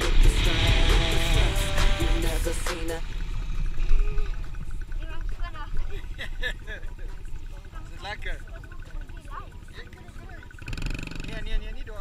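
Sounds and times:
dirt bike engine rumble: 0.0 - 12.0
voices: 0.0 - 12.0.

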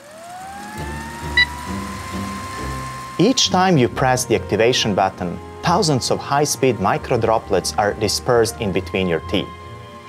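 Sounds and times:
projector motor whine: 0.0 - 10.0.

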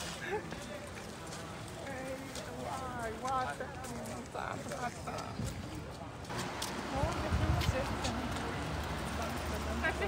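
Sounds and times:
footsteps on brick paving: 0.0 - 10.0
passers-by talking: 0.0 - 10.0.

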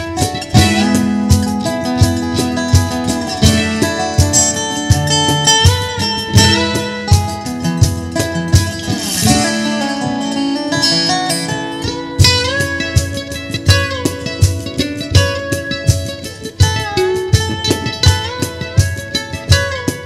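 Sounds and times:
low accompaniment: 0.0 - 20.0
slide guitar melody: 0.0 - 20.0.

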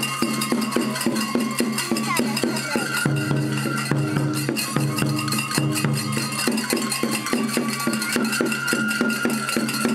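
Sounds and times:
metal percussion beat: 0.0 - 9.9
taiko drum: 0.0 - 9.9
flute melody: 3.6 - 9.9.

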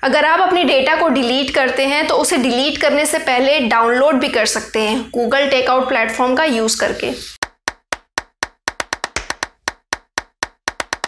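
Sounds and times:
sharp clap-like hits: 7.4 - 11.0.

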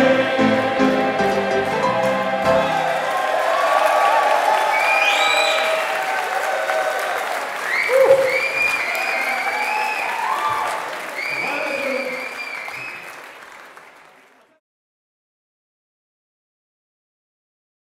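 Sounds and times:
audience applauding: 0.0 - 14.6.

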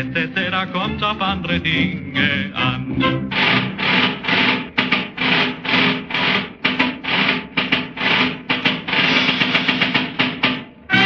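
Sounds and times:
accented string chords: 0.0 - 4.1
old dance orchestra recording: 0.0 - 11.0.

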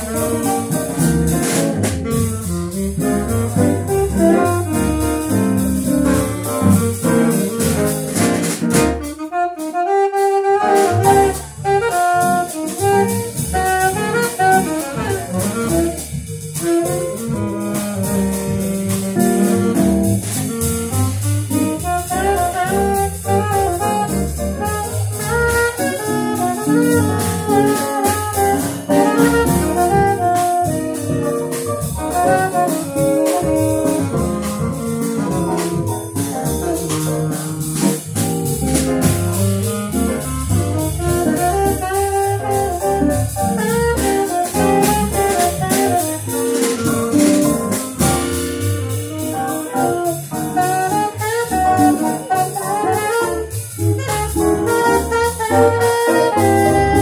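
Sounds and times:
jazz combo playing: 0.0 - 57.0
saxophone lead line: 0.0 - 57.0.

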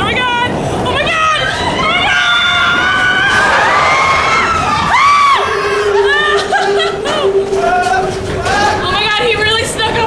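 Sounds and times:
riders screaming and whooping: 1.2 - 9.0
low hum: 1.9 - 8.9.

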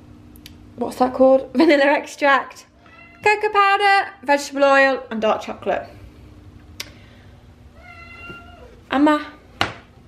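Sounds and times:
cat meowing faintly: 2.8 - 3.3, 7.8 - 8.8.

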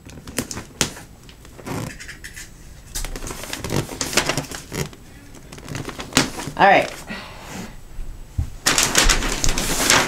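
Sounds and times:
wrapping paper crinkling: 0.0 - 7.1, 8.6 - 10.0.

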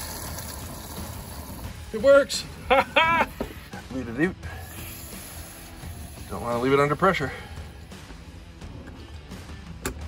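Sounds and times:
compressed air hissing: 0.0 - 1.9, 4.4 - 8.0.

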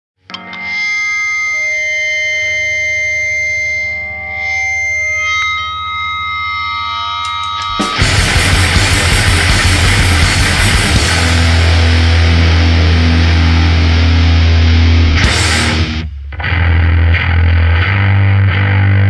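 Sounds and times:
electric guitar feedback drone: 0.2 - 19.0
rapid drumming: 7.8 - 12.4.

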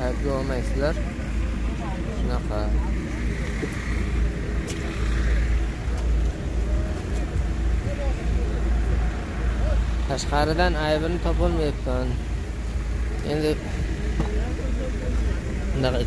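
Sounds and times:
people talking: 0.0 - 4.0, 4.6 - 12.2, 13.2 - 16.0.

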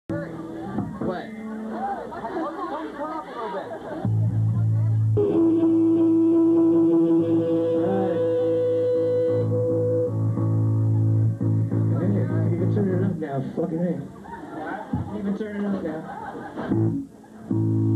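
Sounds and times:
voices chattering: 0.1 - 17.9
amplified electric guitar: 4.0 - 13.2, 16.7 - 17.9
low bass drone: 4.1 - 13.1.

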